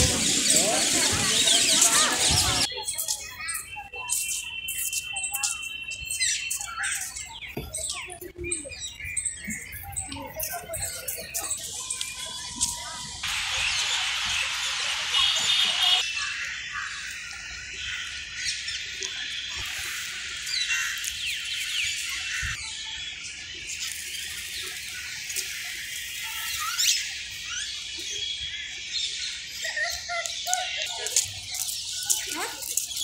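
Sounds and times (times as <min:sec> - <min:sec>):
small birds chirping: 0:00.0 - 0:33.0.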